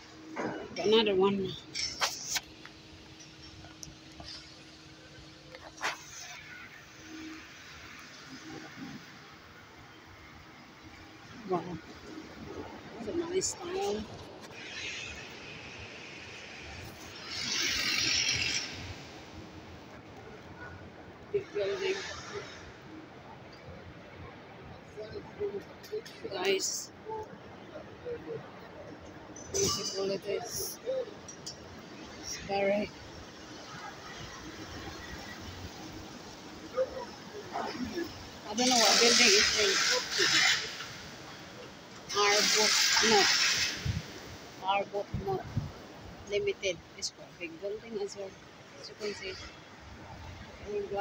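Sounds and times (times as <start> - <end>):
city street background noise: 0.0 - 51.0
rushing hiss: 38.6 - 41.4, 42.1 - 44.6
rush of hiss: 42.1 - 44.5.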